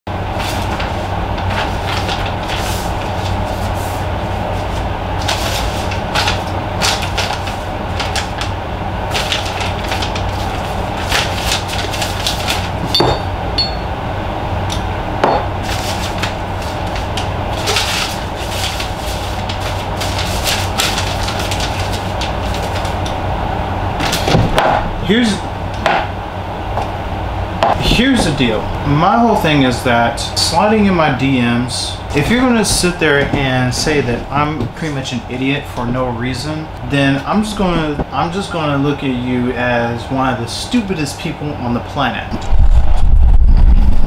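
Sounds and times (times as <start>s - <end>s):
low hum and rumble: 0.1s - 44.0s.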